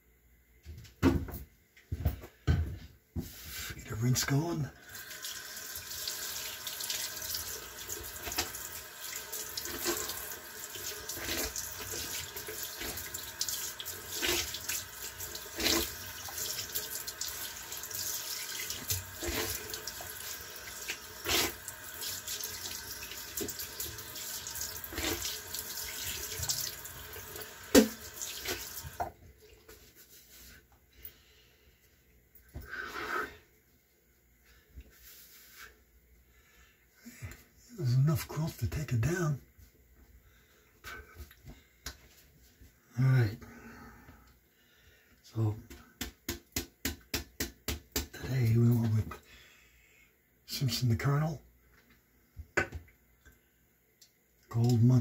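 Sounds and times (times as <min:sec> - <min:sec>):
tap water running into sink: 0:04.8 - 0:29.2.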